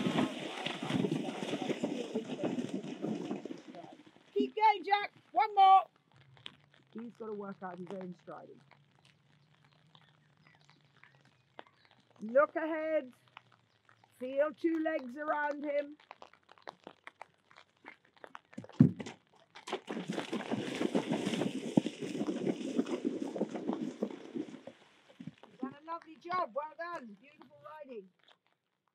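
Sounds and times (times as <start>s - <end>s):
hooves splashing in water: 0.0s - 28.4s
faint chirps: 8.5s - 12.2s.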